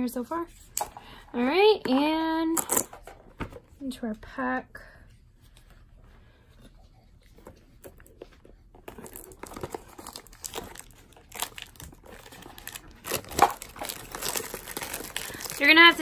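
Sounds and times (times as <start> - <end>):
cellophane wrap crinkling: 8.8 - 16.0.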